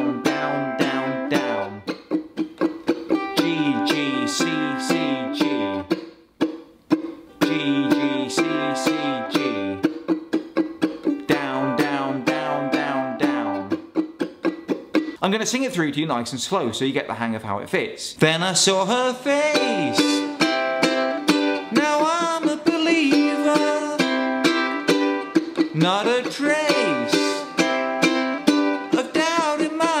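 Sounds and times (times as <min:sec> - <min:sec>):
ukulele strumming chords: 0:00.0 - 0:15.2, 0:19.2 - 0:30.0.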